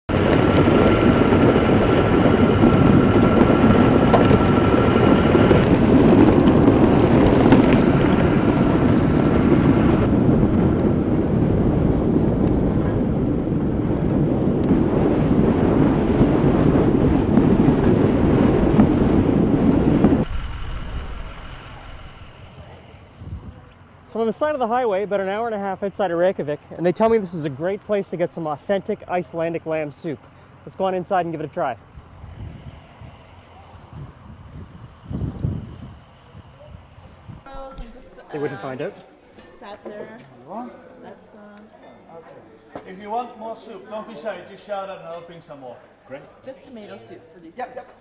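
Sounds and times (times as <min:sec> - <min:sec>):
loud steady rushing noise: 0:00.1 - 0:25.8.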